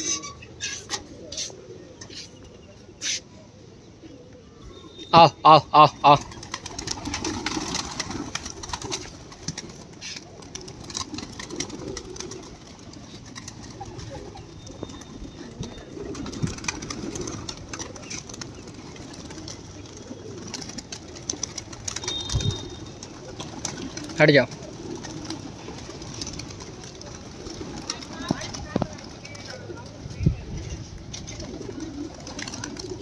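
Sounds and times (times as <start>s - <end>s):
pigeons cooing: 0.0s - 33.0s
pigeon wing flaps: 6.1s - 33.0s.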